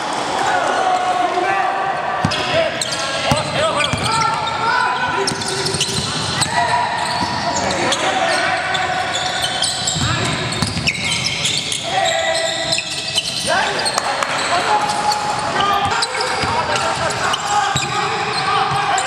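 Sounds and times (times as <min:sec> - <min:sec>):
players calling out: 0:00.2 - 0:19.0
sneakers squeaking on hardwood: 0:02.2 - 0:19.0
basketball bouncing: 0:03.2 - 0:04.4, 0:09.8 - 0:11.0.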